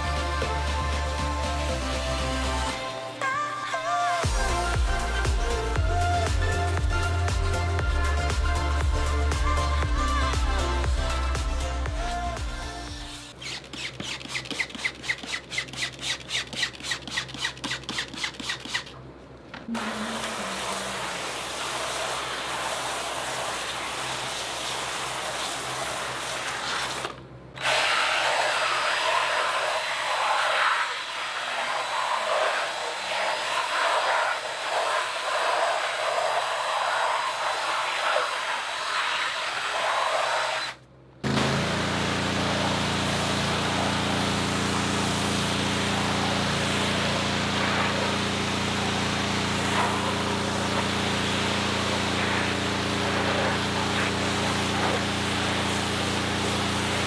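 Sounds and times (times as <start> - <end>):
pressure washer running: 4.2 - 18.9, 19.7 - 40.6, 41.2 - 57.0
stiff brush scrubbing rubber mat: 42.6 - 57.0.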